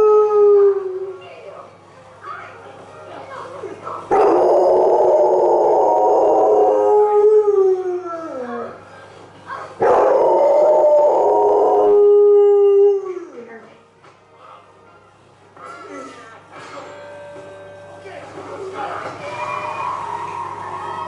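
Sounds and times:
dog howling: 0:04.1 - 0:08.8, 0:09.8 - 0:13.5.

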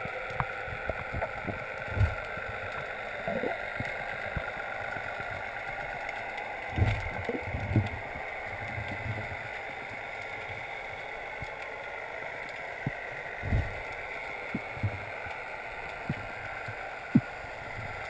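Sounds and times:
steady underwater hiss: 0:00.0 - 0:18.0.

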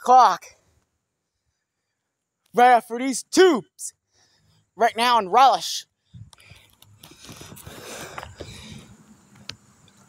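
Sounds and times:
outdoor hiss: 0:04.0 - 0:10.0.

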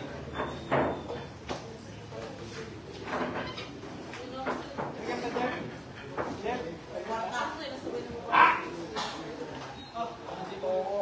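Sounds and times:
loud bark-like yelp: 0:08.3 - 0:08.7.

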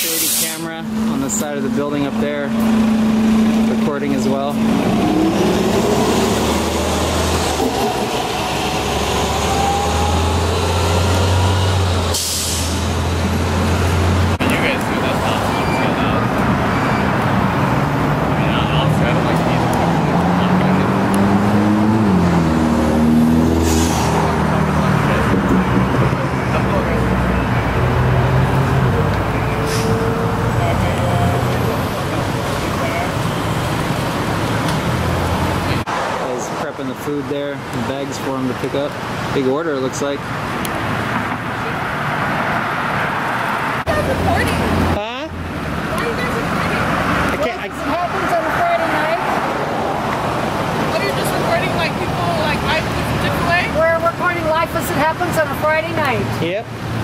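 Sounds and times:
short sharp hiss: 0:00.0 - 0:00.7, 0:12.2 - 0:12.8
car engines idling: 0:00.0 - 0:08.9, 0:12.8 - 0:21.7, 0:24.2 - 0:57.0.

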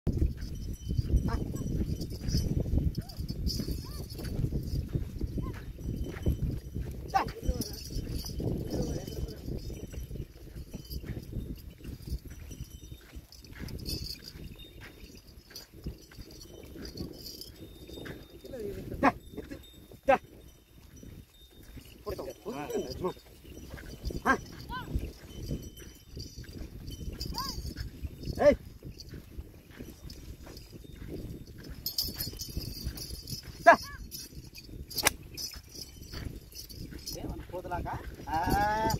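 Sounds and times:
jingling bells: 0:00.1 - 0:38.9.

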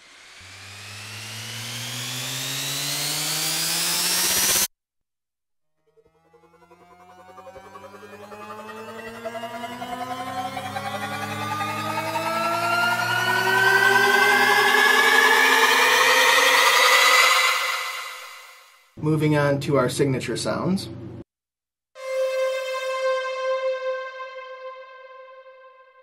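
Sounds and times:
low drone: 0:00.0 - 0:04.7, 0:06.0 - 0:18.7
tones gliding upward: 0:00.0 - 0:04.7, 0:05.8 - 0:18.7.

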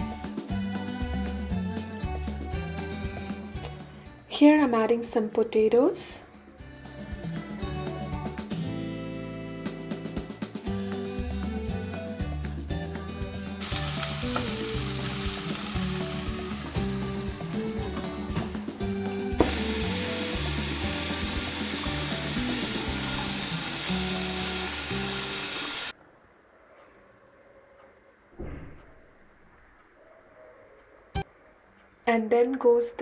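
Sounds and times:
background music: 0:00.0 - 0:25.9
potatoes frying in oil: 0:13.6 - 0:17.9, 0:19.4 - 0:25.9.

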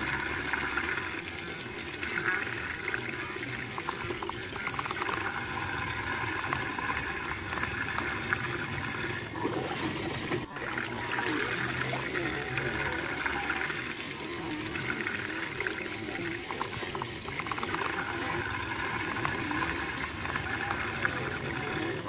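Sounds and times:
small splashes and glugs: 0:00.0 - 0:22.0
water swirling down a drain: 0:00.0 - 0:22.0.

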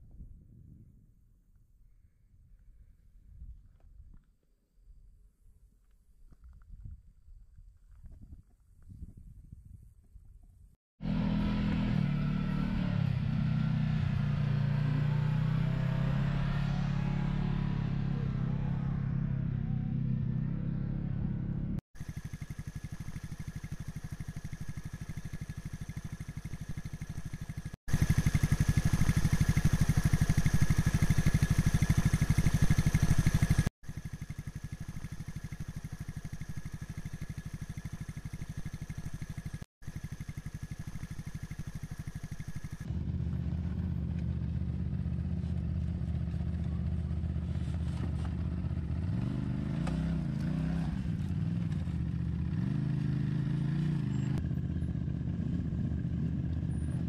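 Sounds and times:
vehicle engine running: 0:11.0 - 0:57.0.

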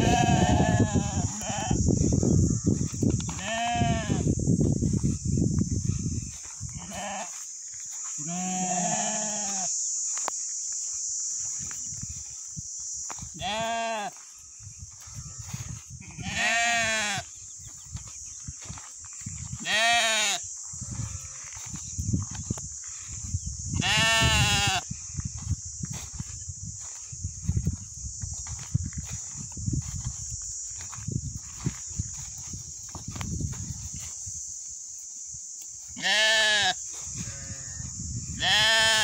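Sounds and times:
lambs bleating: 0:00.0 - 0:01.8, 0:03.4 - 0:04.2, 0:06.8 - 0:07.4, 0:08.2 - 0:09.7, 0:13.4 - 0:14.1, 0:16.0 - 0:17.2, 0:19.6 - 0:20.4, 0:23.8 - 0:24.8, 0:36.0 - 0:39.0
steady high-pitched hiss: 0:00.0 - 0:39.0.

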